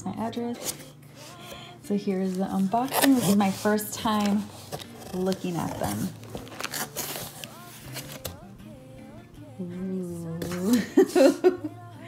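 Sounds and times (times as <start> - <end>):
quiet pop music with singing: 0.0 - 12.0.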